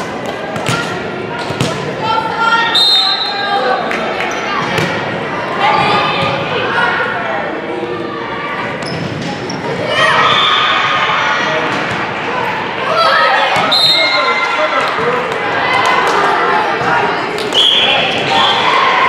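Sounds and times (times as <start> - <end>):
onlookers' voices: 0.1 - 19.0
volleyball hits echoing: 0.2 - 2.0, 13.4 - 13.7
players shouting: 9.7 - 19.0.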